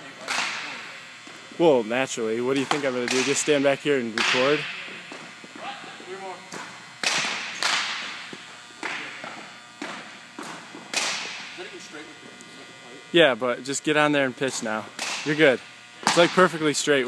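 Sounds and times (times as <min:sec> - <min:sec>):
baseball smacks echoing in gymnasium: 0:00.2 - 0:01.4, 0:02.6 - 0:03.5, 0:04.1 - 0:11.6, 0:15.0 - 0:15.4, 0:16.0 - 0:16.4.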